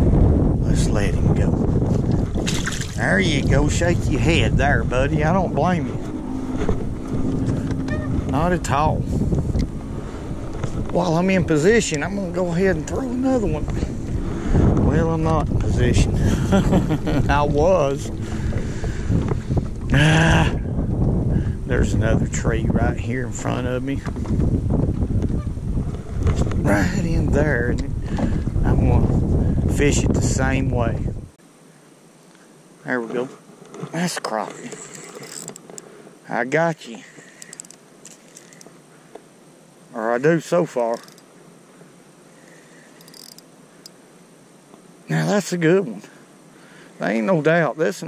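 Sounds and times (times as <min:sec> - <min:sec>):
wind buffeting microphone: 0:00.0 - 0:31.4
fishing reel whirring: 0:34.7 - 0:35.9, 0:37.4 - 0:38.7, 0:40.9 - 0:41.3, 0:43.0 - 0:44.0.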